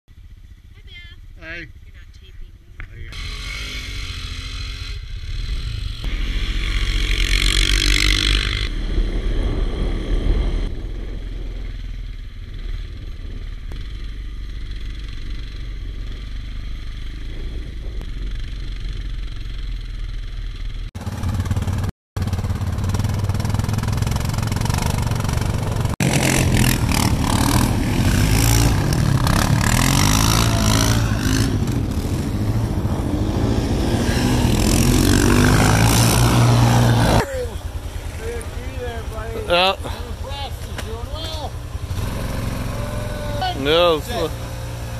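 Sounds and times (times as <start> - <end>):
atv engines revving: 0.2 - 44.9.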